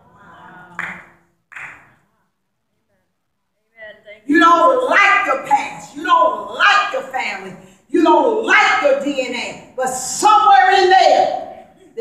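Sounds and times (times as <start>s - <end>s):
hand claps in large room: 0.7s - 2.2s.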